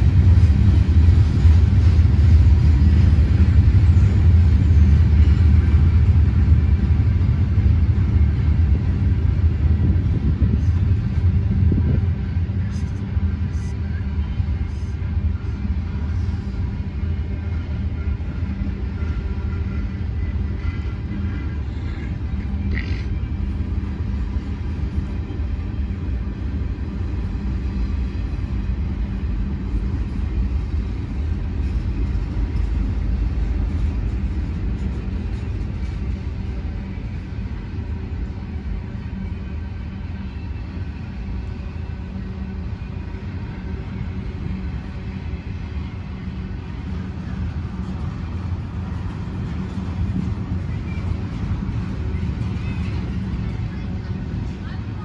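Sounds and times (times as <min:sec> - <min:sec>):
freight train rumbling on rails: 0:00.0 - 0:55.0.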